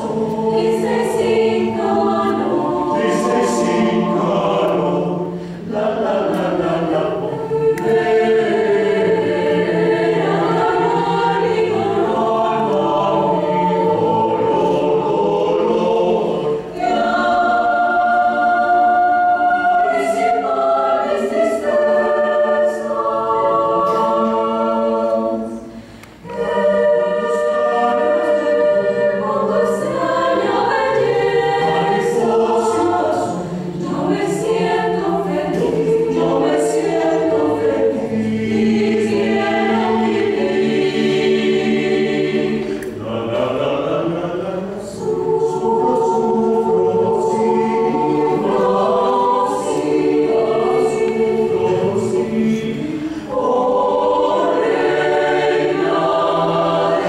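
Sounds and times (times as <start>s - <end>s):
mixed choir singing a cappella: 0.0s - 57.0s.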